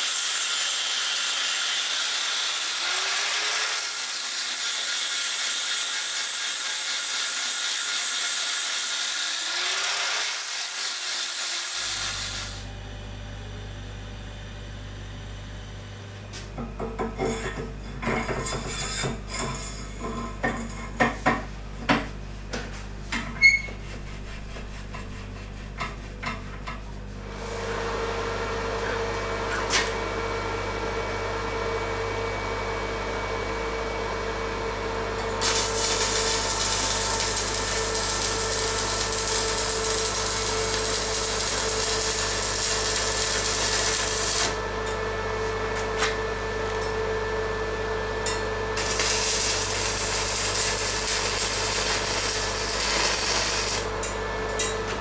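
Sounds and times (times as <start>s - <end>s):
welding arc crackling hiss: 0.0s - 12.7s, 35.4s - 44.6s, 48.8s - 54.1s
steady welder hum: 0.0s - 21.6s, 25.6s - 55.0s.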